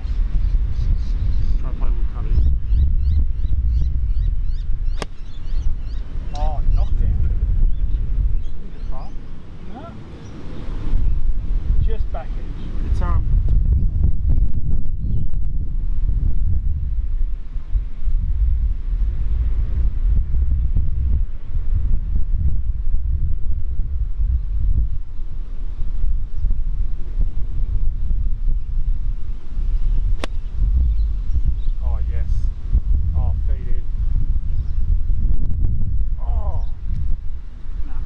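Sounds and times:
wind buffeting microphone: 0.0 - 38.0
golf club striking ball: 4.9 - 5.4, 30.1 - 30.5.

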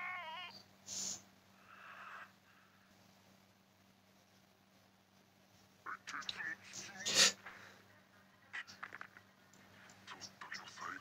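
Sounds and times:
short hiss: 0.9 - 1.3.

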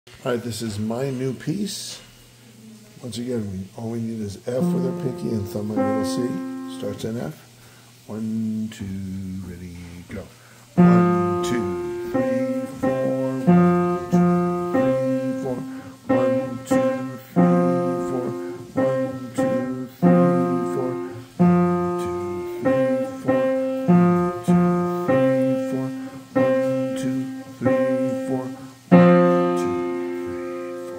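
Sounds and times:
piano chords: 4.5 - 7.4, 10.8 - 30.9.

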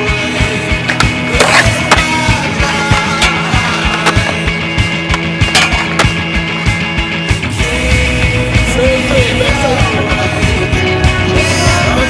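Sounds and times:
rock music with drum beat: 0.0 - 12.0
skateboard clacks: 0.8 - 6.5.

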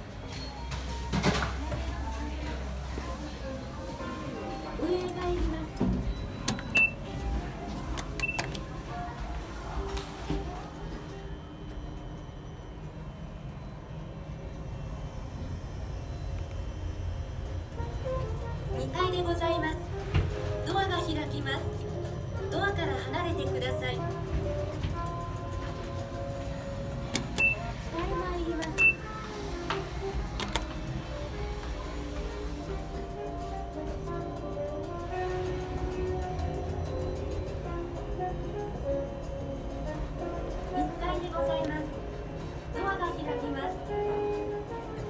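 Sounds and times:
background music: 0.0 - 13.6, 16.8 - 45.0
low steady hum: 0.0 - 45.0
high elevator button beeps: 4.4 - 8.7, 26.6 - 29.3
elevator button click: 5.8 - 7.0, 7.9 - 8.7, 27.0 - 27.7, 28.5 - 29.1, 30.4 - 31.0.

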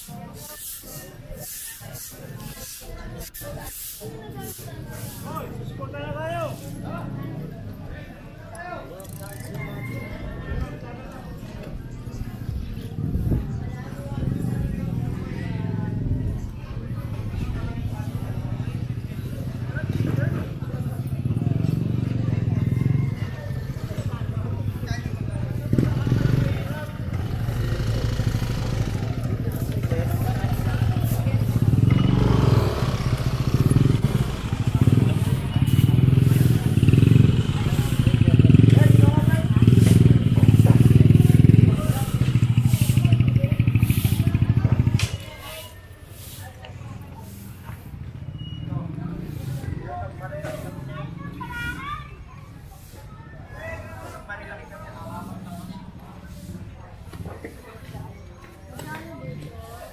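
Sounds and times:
people's voices: 0.0 - 59.9
motorcycle engine running: 12.2 - 45.6.

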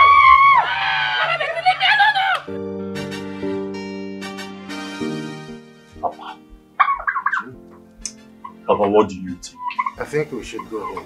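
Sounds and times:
woman screaming in pain: 0.0 - 2.5
faint background music: 5.8 - 11.0.

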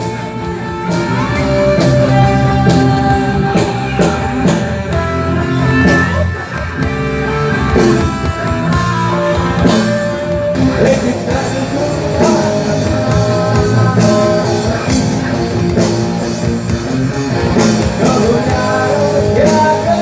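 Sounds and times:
bass guitar: 0.0 - 20.0
distorted electric guitars: 0.0 - 20.0
drum kit: 0.0 - 20.0.

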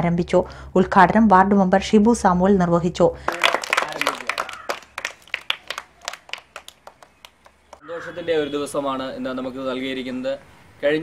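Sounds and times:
hand clapping: 3.3 - 7.8.

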